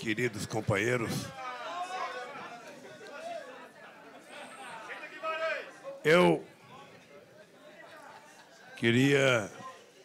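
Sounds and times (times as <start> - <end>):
indistinct chatter: 1.0 - 10.0.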